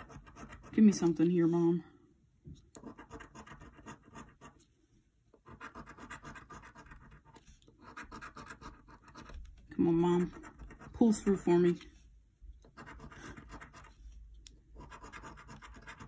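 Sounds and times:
coin scratching lottery ticket: 2.8s - 4.6s, 5.4s - 9.3s, 10.0s - 11.0s, 12.7s - 14.0s, 14.8s - 16.0s.

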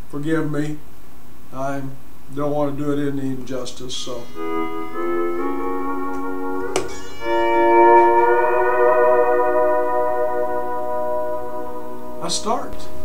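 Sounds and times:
electric steel guitar chords: 3.9s - 13.0s
guitar pick stroke: 3.9s - 13.0s.

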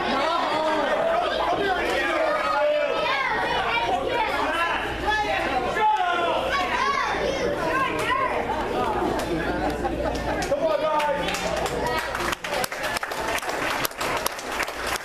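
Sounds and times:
crowd chatter in echoing hall: 0.0s - 15.0s.

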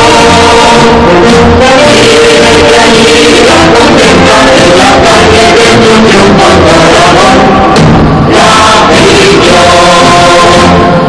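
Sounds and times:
choral singing in held notes: 0.0s - 11.0s.

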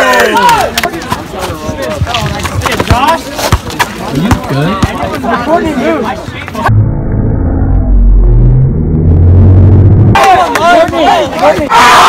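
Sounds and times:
deep bass droning tones: 6.6s - 10.5s.

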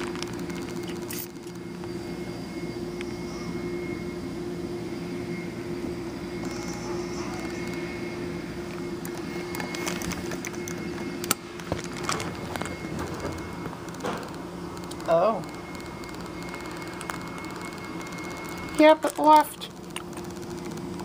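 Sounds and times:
steady mechanical hum: 0.0s - 21.0s.

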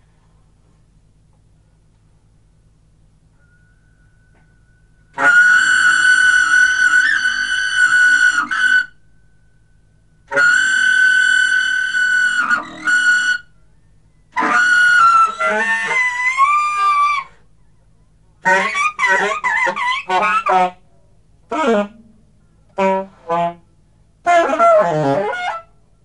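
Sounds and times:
saxophone high held notes: 3.3s - 13.5s, 14.3s - 17.4s, 18.4s - 25.7s.

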